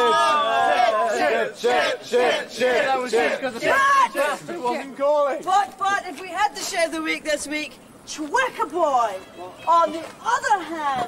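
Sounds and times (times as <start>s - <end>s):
group chanting: 0.0s - 4.5s.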